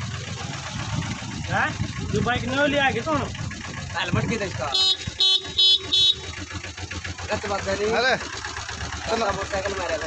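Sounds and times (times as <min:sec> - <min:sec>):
motorcycle engine idling: 0:00.0 - 0:10.0
motorcycle horn toots: 0:04.7 - 0:06.5.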